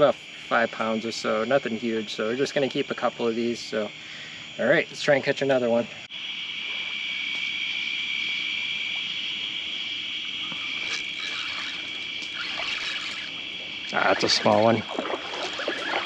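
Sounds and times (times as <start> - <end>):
night insects chorus: 0.0 - 16.0
small ticks: 6.7 - 7.5, 10.4 - 16.0
water trickling: 10.4 - 16.0.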